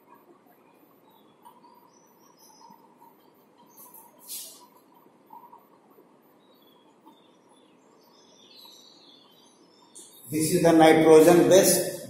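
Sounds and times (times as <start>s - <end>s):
low room hiss: 0.0s - 12.0s.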